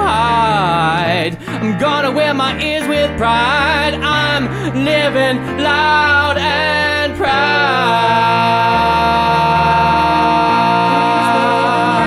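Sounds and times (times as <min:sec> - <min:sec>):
singer holding a long note: 0:00.0 - 0:12.0
sustained keyboard chords: 0:00.0 - 0:12.0.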